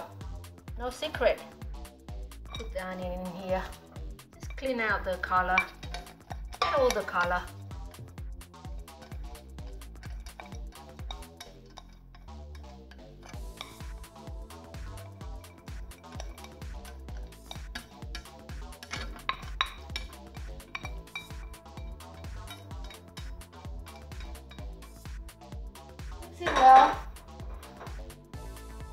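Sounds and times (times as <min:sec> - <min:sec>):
background music with steady beat: 0:00.0 - 0:28.9
steel bowls clinking: 0:02.2 - 0:25.2, 0:25.8 - 0:28.1.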